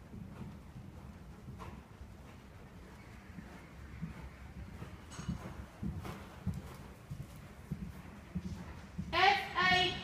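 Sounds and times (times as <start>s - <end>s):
horse hoofbeats cantering: 0.0s - 10.0s.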